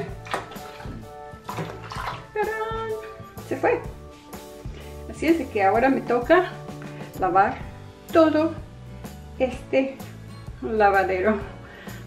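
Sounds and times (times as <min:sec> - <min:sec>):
background music with soft beat: 0:00.0 - 0:12.0.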